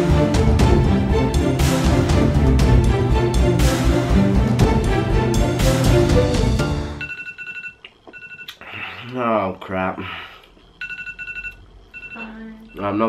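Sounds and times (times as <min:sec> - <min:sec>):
phone timer alarm beeping: 0:07.0 - 0:08.5, 0:10.8 - 0:13.0
man talking: 0:12.8 - 0:13.0.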